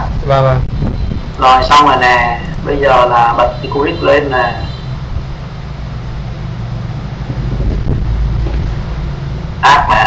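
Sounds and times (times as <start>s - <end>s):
low rumble: 5.0s - 9.7s.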